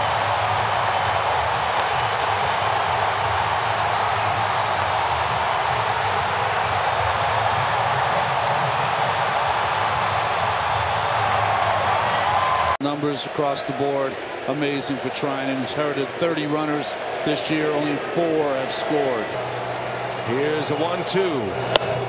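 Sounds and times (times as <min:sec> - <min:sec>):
stadium crowd cheering: 0:00.0 - 0:22.0.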